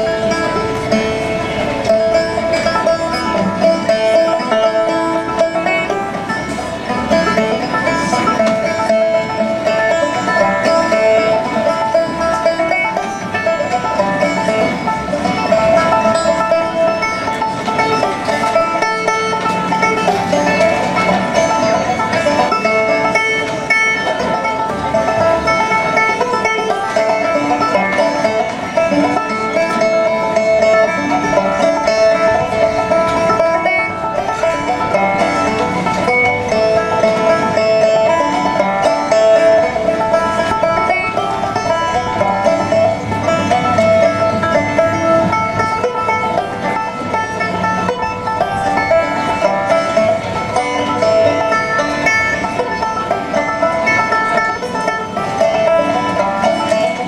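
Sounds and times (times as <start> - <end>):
banjo playing old-time tune: 0.0 - 57.0.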